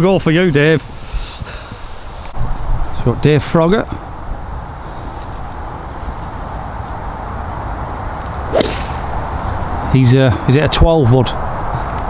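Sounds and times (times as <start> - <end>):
wind rumble on microphone: 0.0 - 12.0
golf club striking ball: 8.2 - 9.4.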